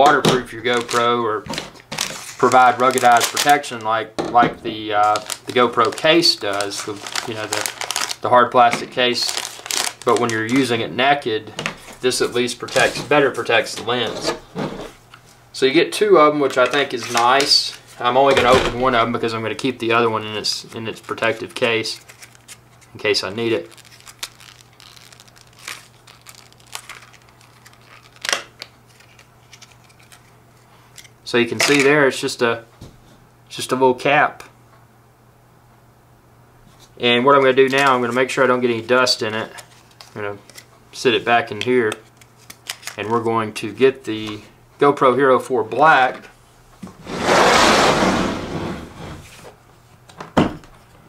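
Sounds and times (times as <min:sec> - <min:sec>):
plastic packaging crinkling: 0:00.0 - 0:04.0, 0:04.6 - 0:11.2, 0:16.5 - 0:18.1, 0:20.6 - 0:31.1, 0:41.8 - 0:43.2
plastic case scraping on table: 0:46.9 - 0:49.4.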